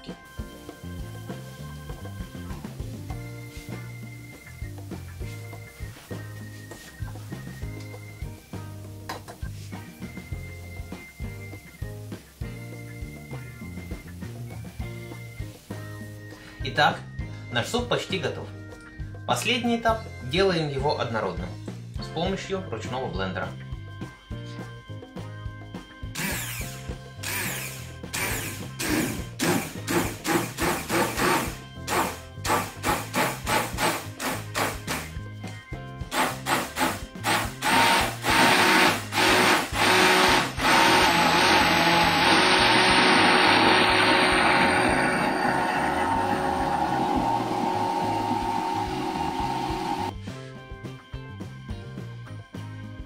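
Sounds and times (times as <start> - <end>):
immersion blender whine: 26.2 - 35.0, 36.1 - 50.1.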